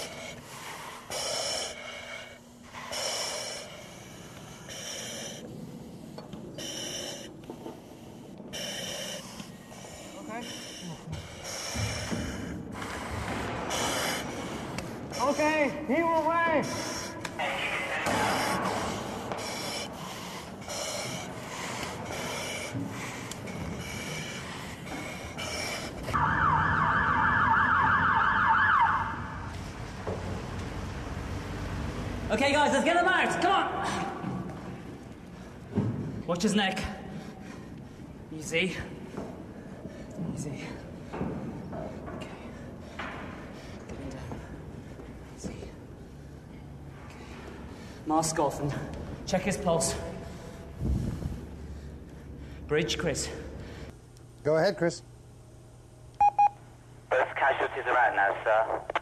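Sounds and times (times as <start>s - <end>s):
gasping breaths: 0.0s - 17.4s, 18.0s - 26.2s
ambulance siren warbling: 26.2s - 29.5s.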